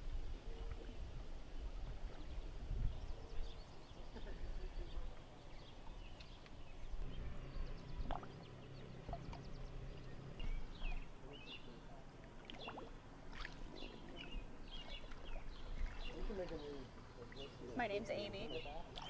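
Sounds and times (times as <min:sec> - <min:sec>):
bird chirps: 0:03.0 - 0:17.7
water sloshing and lapping: 0:05.0 - 0:17.8, 0:18.4 - 0:19.0
low rumble: 0:06.8 - 0:11.4.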